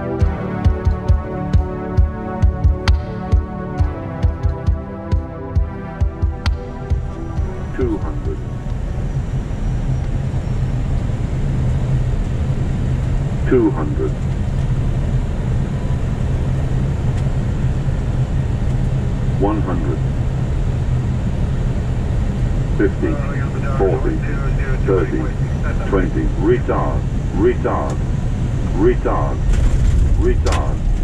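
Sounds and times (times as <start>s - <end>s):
aircraft engine and airflow drone: 0.0s - 31.0s.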